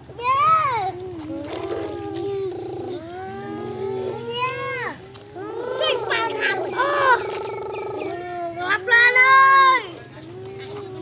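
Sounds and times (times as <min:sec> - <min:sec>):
child making gliding vocal sounds: 0:00.3 - 0:09.8.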